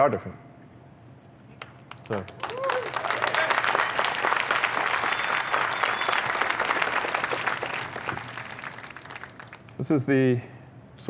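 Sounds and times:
audience applauding: 1.6 - 9.9.

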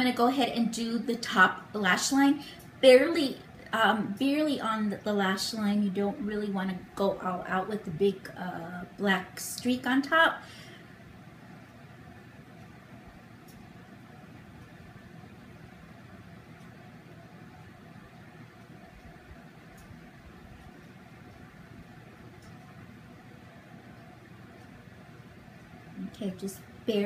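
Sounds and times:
room hum and hiss: 0.0 - 27.0
faint clicks: 16.5 - 22.8.

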